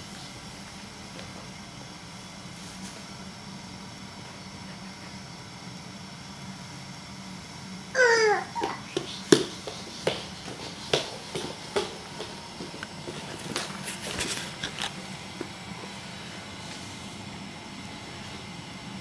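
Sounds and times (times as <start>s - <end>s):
steady low hum: 0.0s - 19.0s
baby crawling on hardwood floor: 8.6s - 14.8s.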